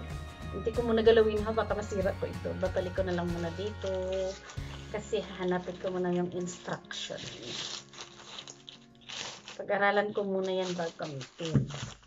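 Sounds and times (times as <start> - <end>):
plastic wrapping rustling: 2.6 - 12.0.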